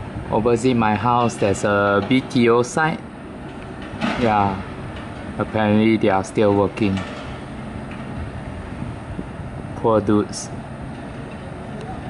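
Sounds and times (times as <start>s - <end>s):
distant construction machinery rumble: 0.0s - 12.0s.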